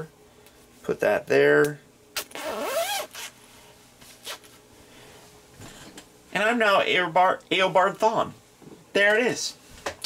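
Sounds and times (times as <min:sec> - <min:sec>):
jacket zipper being zipped: 0:02.2 - 0:03.4, 0:04.2 - 0:04.6.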